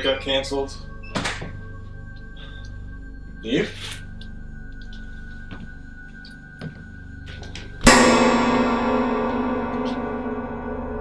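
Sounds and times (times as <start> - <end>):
low steady drone: 0.0 - 11.0
loud ringing musical hit: 7.8 - 11.0.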